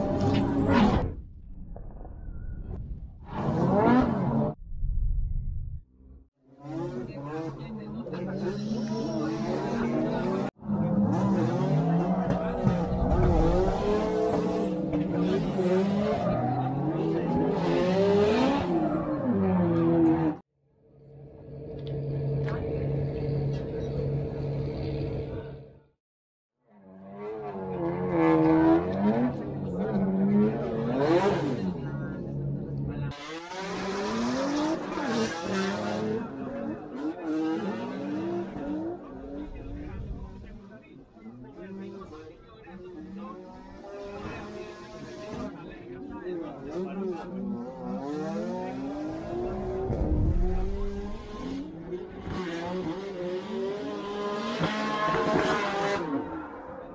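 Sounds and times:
car engines revving: 0:03.3 - 0:04.6, 0:06.5 - 0:20.4, 0:27.0 - 0:56.9.

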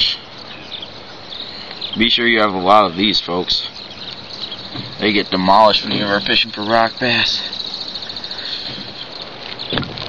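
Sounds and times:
insects chirping: 0:00.0 - 0:10.0
outdoor background hiss: 0:00.0 - 0:10.0.

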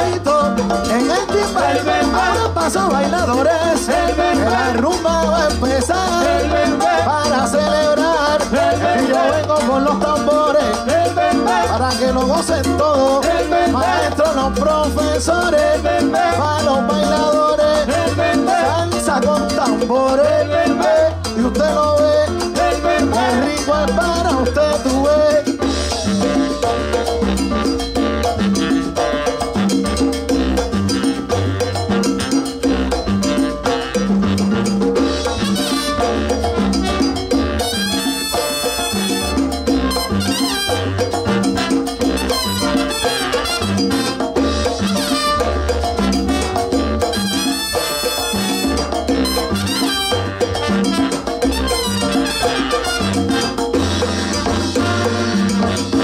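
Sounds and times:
driving percussion: 0:00.0 - 0:56.0
salsa band playing: 0:00.0 - 0:56.0.

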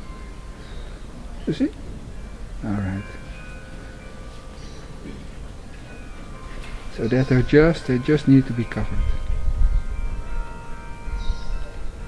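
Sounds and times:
ringing chimes: 0:00.0 - 0:12.0.

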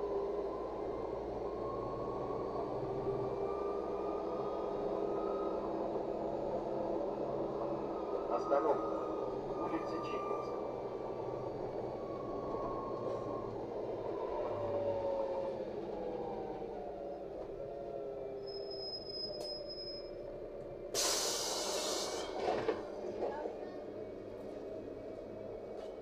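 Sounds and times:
bus drivetrain whine: 0:00.0 - 0:26.0
compressed air hiss: 0:21.0 - 0:22.3.

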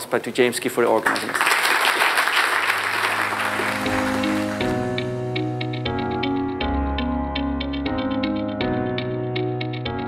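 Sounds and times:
audience applause: 0:01.0 - 0:05.1
background music with held notes: 0:03.0 - 0:10.0.

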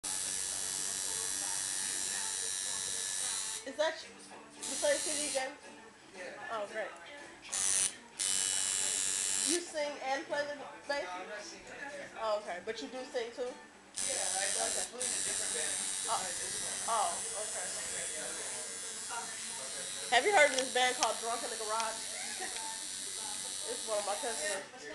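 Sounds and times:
tattoo machine buzzing: 0:00.0 - 0:03.7, 0:04.6 - 0:05.4, 0:07.5 - 0:09.6, 0:14.0 - 0:24.7.

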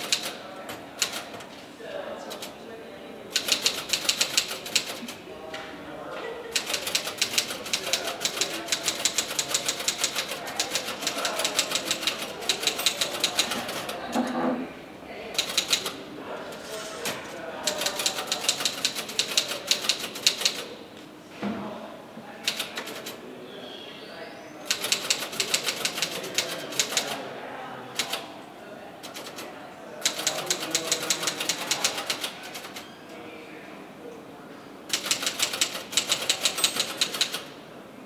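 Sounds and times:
rapid keyboard typing: 0:00.0 - 0:00.4, 0:03.3 - 0:05.2, 0:06.5 - 0:14.0, 0:15.4 - 0:16.0, 0:17.6 - 0:20.7, 0:24.7 - 0:27.2, 0:29.0 - 0:29.4, 0:30.0 - 0:32.8, 0:34.9 - 0:37.5.

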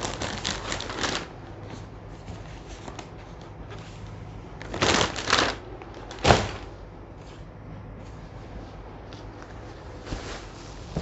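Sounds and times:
packaged fabric rustling: 0:00.0 - 0:03.2, 0:04.6 - 0:06.8.

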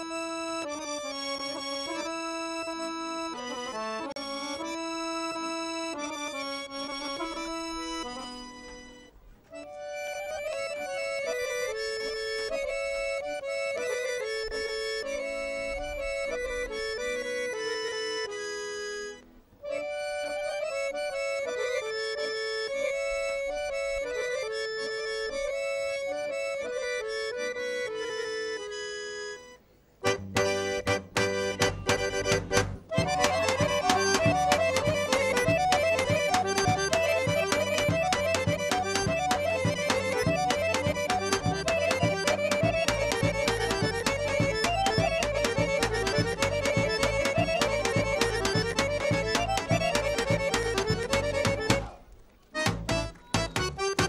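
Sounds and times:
accordion folk dance melody: 0:00.0 - 0:54.0.

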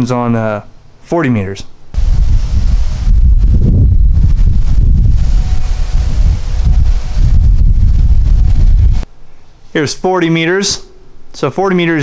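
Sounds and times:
wind buffeting microphone: 0:02.0 - 0:09.1.

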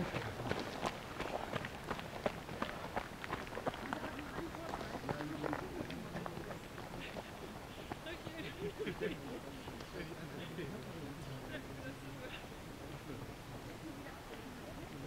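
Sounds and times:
running footsteps on gravel: 0:00.0 - 0:11.7.

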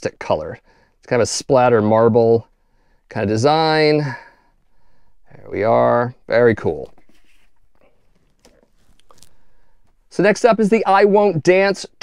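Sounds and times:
record sleeves tapping: 0:06.4 - 0:10.0
soft sliding rustle: 0:06.5 - 0:10.0.

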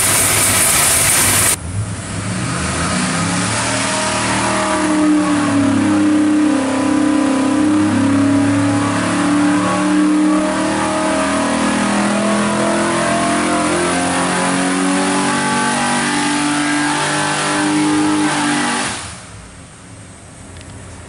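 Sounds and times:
engine revving under load: 0:00.0 - 0:19.3.

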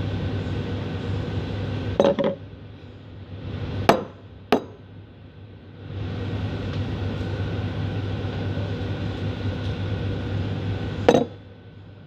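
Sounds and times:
low steady hum: 0:00.0 - 0:12.0
ceramic cup knocking on wooden counter: 0:11.1 - 0:11.3.

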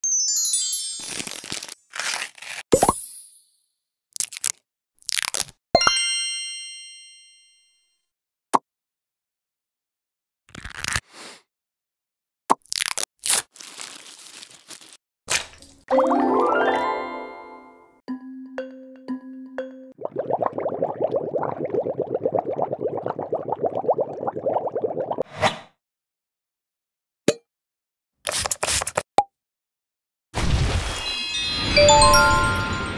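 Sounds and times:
sachet tearing and crinkling: 0:00.9 - 0:02.7, 0:04.2 - 0:05.6, 0:10.5 - 0:11.0, 0:12.7 - 0:15.8
foaming mask crackling and squishing: 0:12.8 - 0:15.6
chime ding: 0:31.1 - 0:32.9.

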